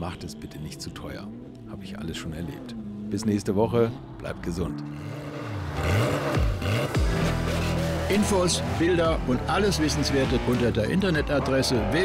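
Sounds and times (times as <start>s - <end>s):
car engine revving: 1.7s - 12.0s.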